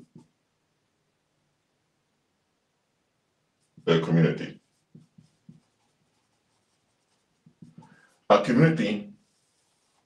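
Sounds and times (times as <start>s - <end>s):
marker strokes on whiteboard: 0.0s - 0.4s, 3.6s - 10.0s.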